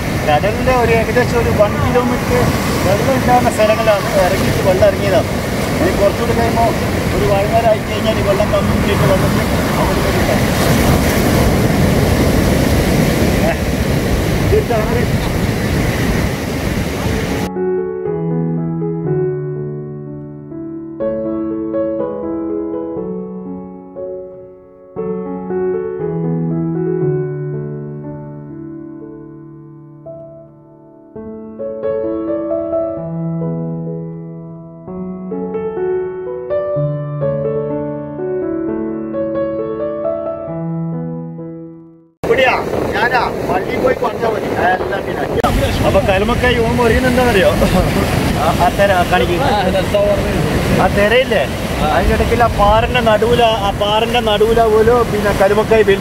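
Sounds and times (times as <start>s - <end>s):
soft piano music: 0.0s - 12.6s, 16.8s - 42.9s, 43.6s - 56.0s
surf washing over rocks: 0.0s - 17.5s, 42.2s - 56.0s
wind on microphone: 0.0s - 17.5s, 42.2s - 56.0s
men talking: 0.2s - 11.3s, 13.2s - 15.4s, 42.2s - 56.0s.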